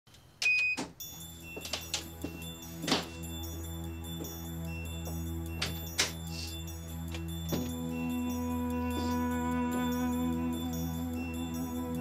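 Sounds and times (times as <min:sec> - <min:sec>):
door lock beep: 0:00.4 - 0:03.1
soft background music: 0:01.0 - 0:12.0.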